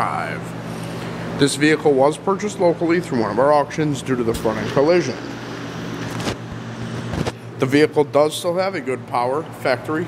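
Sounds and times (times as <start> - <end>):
low background hum and hiss: 0.0 - 10.0.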